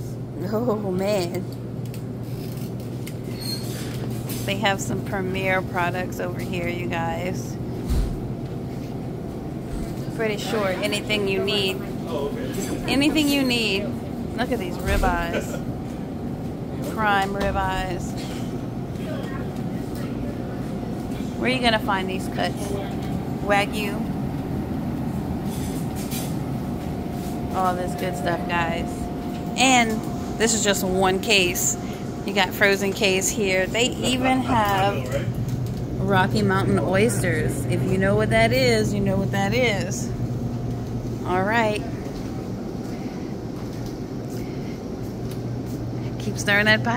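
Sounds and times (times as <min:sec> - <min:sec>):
faint even hum: 0:00.0 - 0:46.9
display case low rumble: 0:02.0 - 0:46.9.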